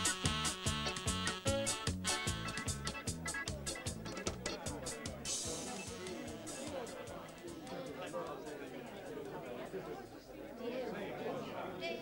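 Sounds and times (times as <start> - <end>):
indistinct chatter of voices: 3.0 - 12.0.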